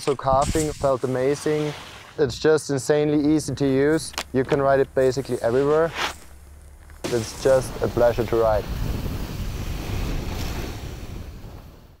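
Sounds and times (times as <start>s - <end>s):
wind buffeting microphone: 7.1s - 11.9s.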